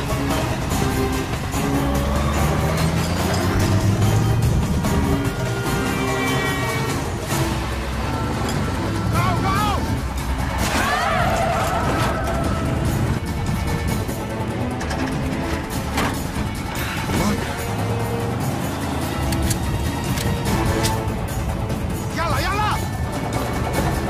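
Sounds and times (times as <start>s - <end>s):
background film music: 0.0s - 24.0s.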